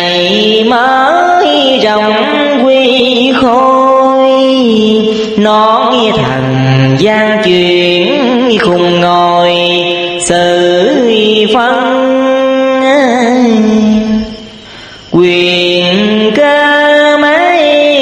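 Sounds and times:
chanted verse recitation: 0.0s - 18.0s.

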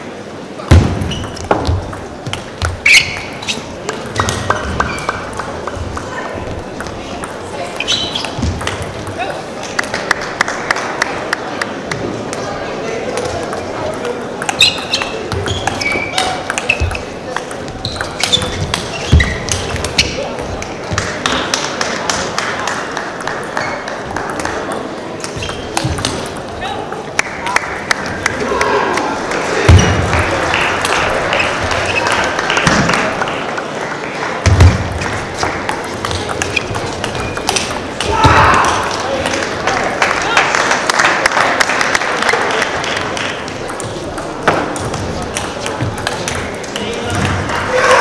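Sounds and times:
table tennis balls clicking: 1.0s - 10.5s, 13.1s - 28.4s, 34.4s - 40.2s, 42.2s - 47.7s
table tennis ball clicking: 35.6s - 38.1s.

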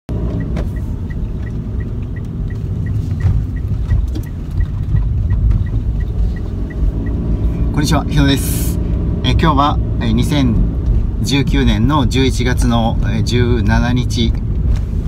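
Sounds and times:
road and engine rumble: 0.1s - 15.0s
turn signal ticking: 0.1s - 15.0s.

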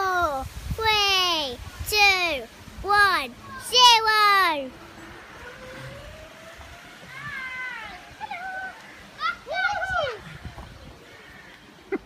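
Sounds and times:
thin rising tone: 2.2s - 10.5s.

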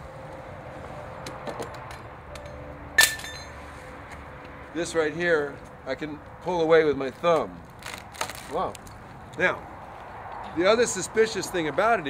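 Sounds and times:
sharp ringing clink: 2.4s - 3.6s.

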